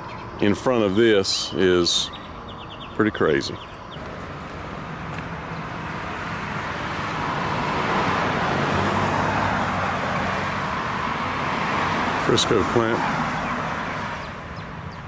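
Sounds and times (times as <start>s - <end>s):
vehicle engine and tyre noise: 0.0s - 15.0s.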